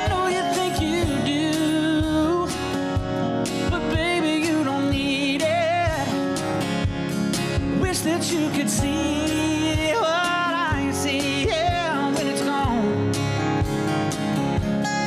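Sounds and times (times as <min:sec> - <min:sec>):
man singing with vibrato: 0:00.0 - 0:06.4, 0:07.6 - 0:13.2
keyboard: 0:00.0 - 0:15.0
percussion beat: 0:00.0 - 0:15.0.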